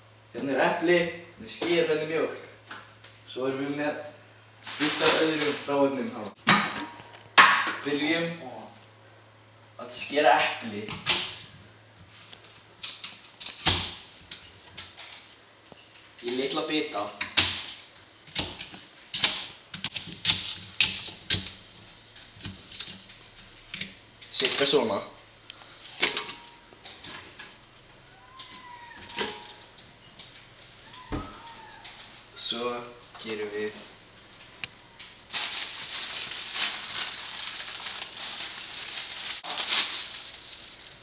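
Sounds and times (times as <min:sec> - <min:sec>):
plastic bag rustling: 0:04.6 - 0:05.8, 0:35.2 - 0:41.0.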